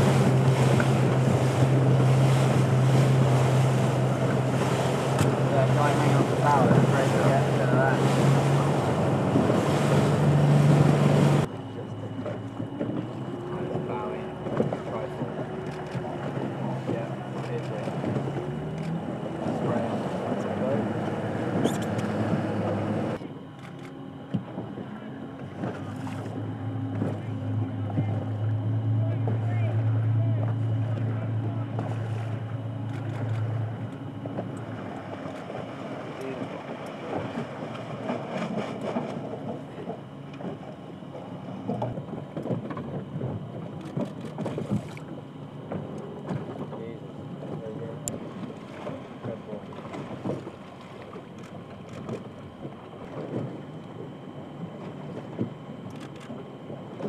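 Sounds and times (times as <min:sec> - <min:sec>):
low hum: 0:00.0 - 0:57.0
motorboat engine running: 0:00.0 - 0:57.0.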